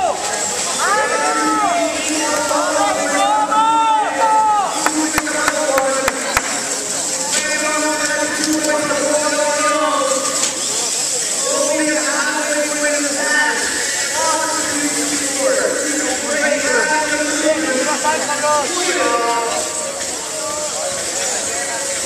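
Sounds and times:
man talking over public address: 0:00.9 - 0:22.0.

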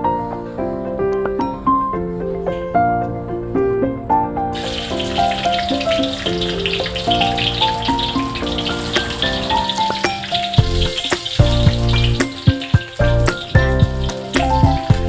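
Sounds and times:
background music: 0:00.0 - 0:15.0
garlic sizzling in hot oil: 0:04.6 - 0:15.0.

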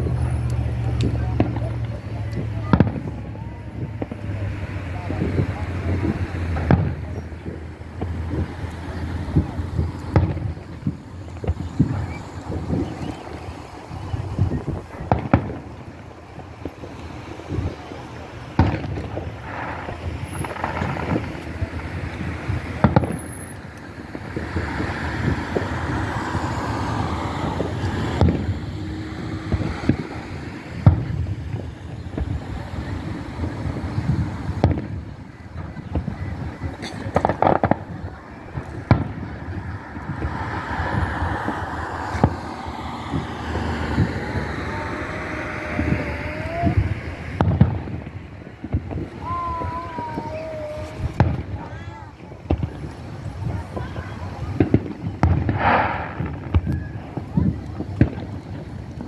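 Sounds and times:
fireworks shells bursting: 0:00.0 - 0:59.0.

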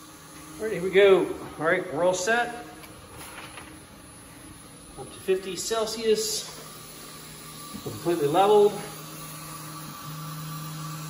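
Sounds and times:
three d printer humming: 0:00.0 - 0:11.0.

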